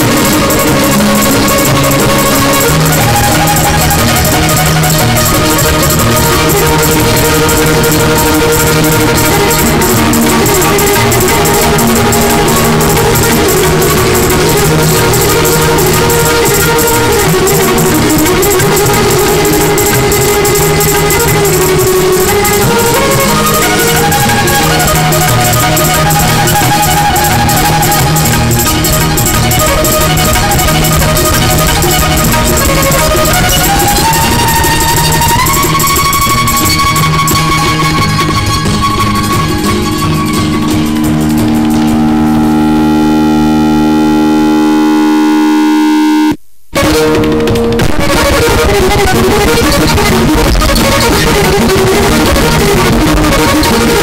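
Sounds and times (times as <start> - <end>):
percussion beat: 0.0 - 42.5, 46.7 - 54.0
violin bowing long notes: 0.0 - 54.0.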